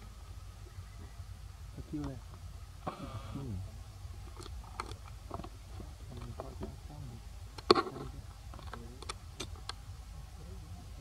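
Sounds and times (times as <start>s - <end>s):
monkey eating clicks: 4.3s - 5.5s, 8.5s - 9.8s.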